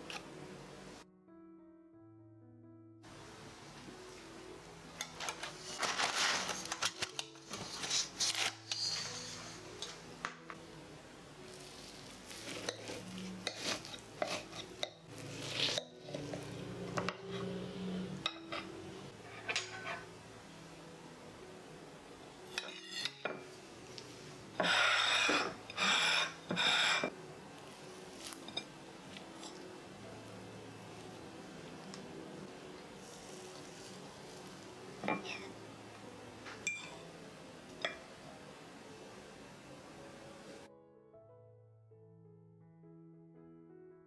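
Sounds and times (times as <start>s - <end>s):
knife scraping on plate: 12.3s - 14.8s, 19.3s - 20.1s, 22.5s - 23.4s, 24.6s - 27.1s.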